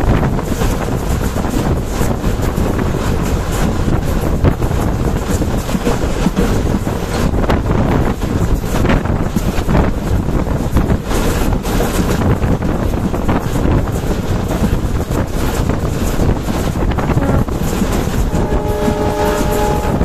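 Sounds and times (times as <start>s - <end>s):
train rumbling: 0.0s - 20.0s
wind buffeting microphone: 0.0s - 20.0s.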